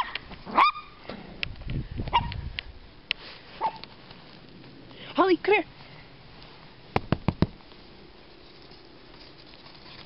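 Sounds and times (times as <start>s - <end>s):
small dog yip: 0.0s - 1.0s, 2.1s - 2.4s, 3.6s - 3.8s.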